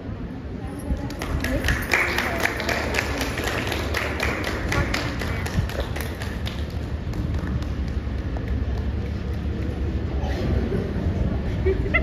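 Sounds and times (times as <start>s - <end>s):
rhythmic hand clapping: 1.0s - 9.7s.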